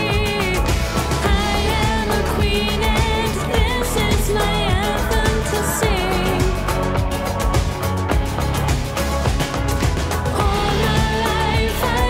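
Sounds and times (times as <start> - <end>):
backing track with steady beat: 0.0 - 12.0
pop singing: 0.0 - 12.0.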